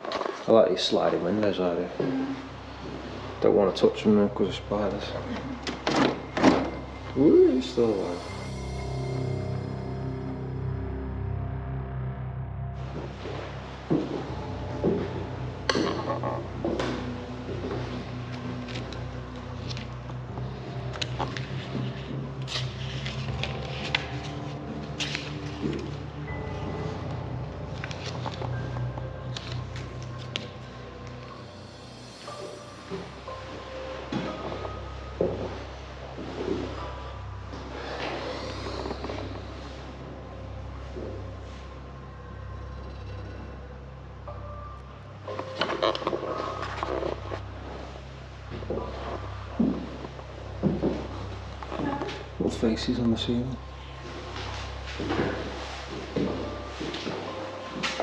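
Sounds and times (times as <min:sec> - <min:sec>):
background music with sustained low tones: 0:00.0 - 0:58.0.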